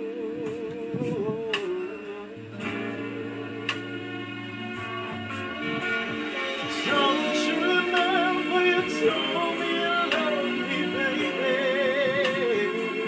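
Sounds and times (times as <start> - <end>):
soul ballad with guitar and bass: 0.0 - 13.0.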